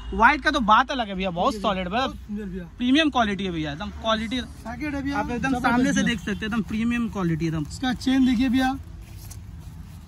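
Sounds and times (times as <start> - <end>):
man talking: 0.1 - 8.8.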